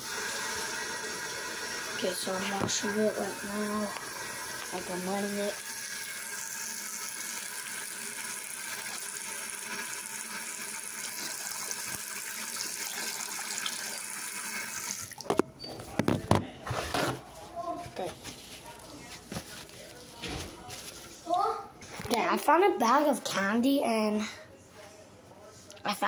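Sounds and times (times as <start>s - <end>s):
sink tap running: 0.0s - 15.4s
knocks and bumps of handling: 15.3s - 17.2s.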